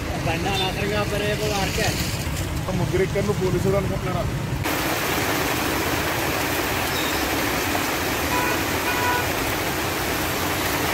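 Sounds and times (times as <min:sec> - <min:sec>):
heavy rain pouring: 0:00.0 - 0:10.9
vehicles driving through water: 0:00.0 - 0:10.9.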